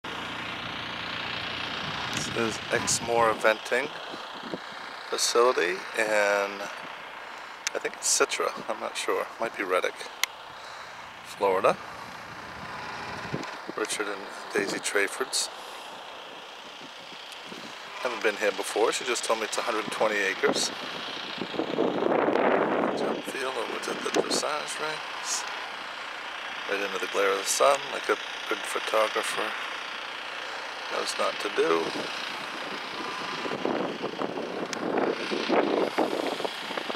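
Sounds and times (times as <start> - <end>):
steady mechanical hum with hiss: 0.1 - 36.9.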